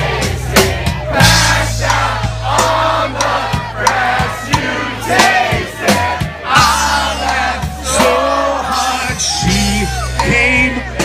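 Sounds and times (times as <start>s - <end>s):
crowd singing and shouting: 0.0s - 11.0s
drum hits: 0.0s - 11.0s
live rock band playing: 0.0s - 11.0s.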